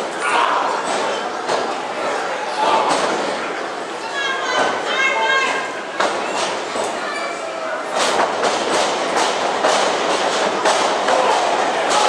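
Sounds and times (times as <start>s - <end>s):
people shouting: 0.2s - 0.8s, 11.0s - 12.0s.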